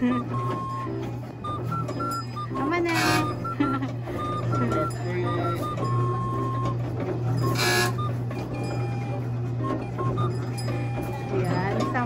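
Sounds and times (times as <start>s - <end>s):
electronic beeping tune: 0.0s - 6.8s, 7.4s - 12.0s
kiddie ride motor hum: 0.0s - 12.0s.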